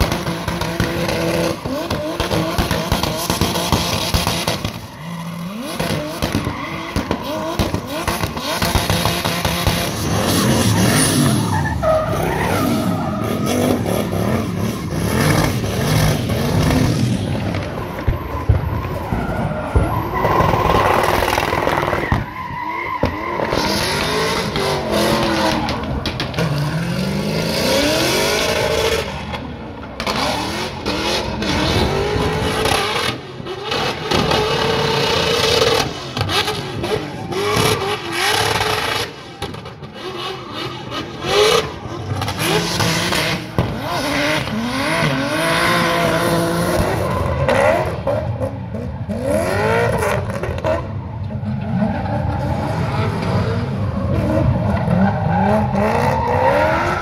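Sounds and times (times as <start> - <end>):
car engines revving: 0.0 - 57.0
tyres squealing and skidding: 0.0 - 57.0.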